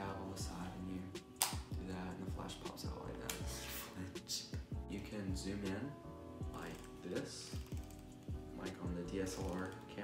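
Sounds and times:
hip-hop instrumental music: 0.0 - 10.0.

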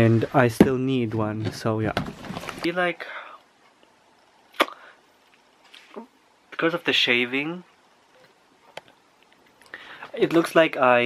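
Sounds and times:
man talking: 0.0 - 2.0, 2.6 - 3.2, 6.6 - 7.7, 10.1 - 11.0.

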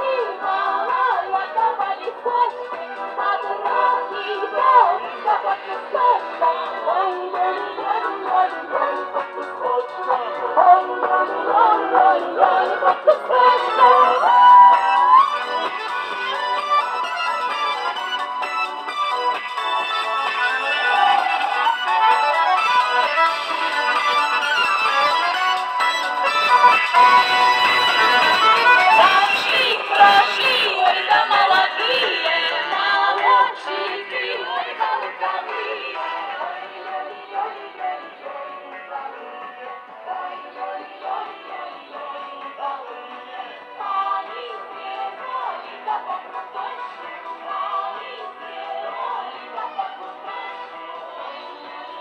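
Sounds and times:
women singing: 0.0 - 15.2, 20.7 - 21.8, 27.1 - 52.0
accordion: 0.0 - 52.0
balalaika: 0.0 - 52.0.

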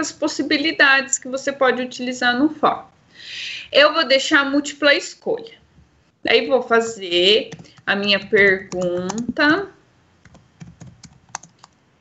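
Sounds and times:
typing on computer keyboard: 7.5 - 9.4, 10.2 - 11.8.

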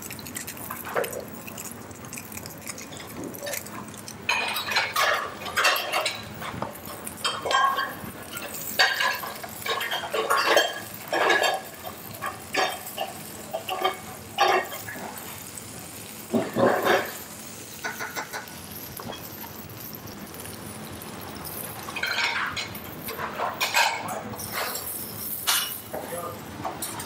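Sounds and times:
low sizzle: 0.0 - 27.0
utensils clinking on frying pan: 4.3 - 15.6, 16.3 - 27.0.

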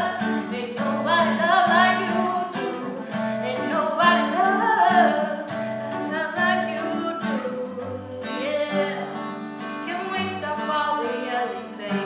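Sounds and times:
acoustic guitar: 0.0 - 12.0
woman singing: 0.0 - 12.0.

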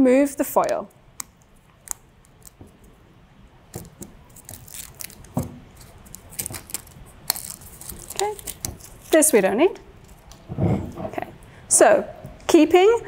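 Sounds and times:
foil tearing and crinkling: 3.8 - 9.4.

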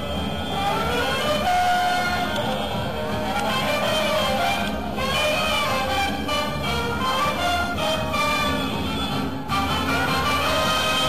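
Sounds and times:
street band music: 0.0 - 11.0.

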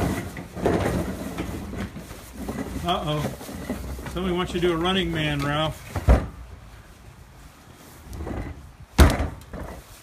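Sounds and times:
faint rustling and handling: 0.0 - 8.8.

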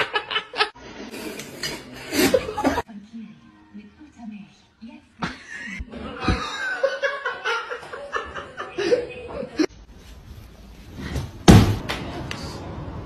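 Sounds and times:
loud thump: 11.4 - 11.9.

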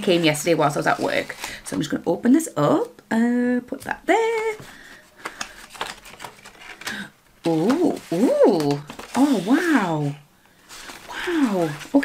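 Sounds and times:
packaging clicks and rustles: 4.6 - 9.4.

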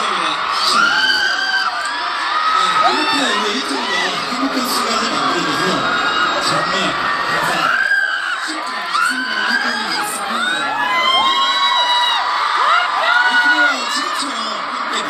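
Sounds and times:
crowd screaming and cheering: 0.0 - 15.0.

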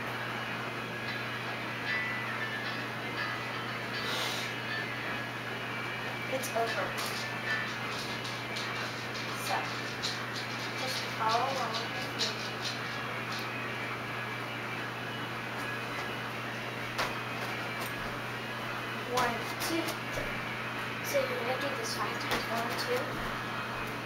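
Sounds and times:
low hum and room hiss: 0.0 - 24.0
person counting: 19.1 - 20.0.

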